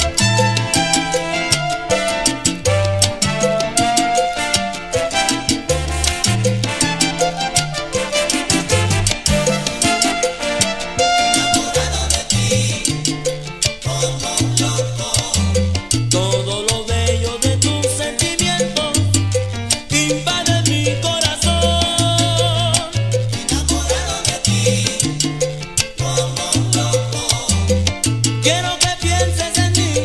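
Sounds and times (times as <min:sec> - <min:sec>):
salsa music: 0:00.0 - 0:30.0.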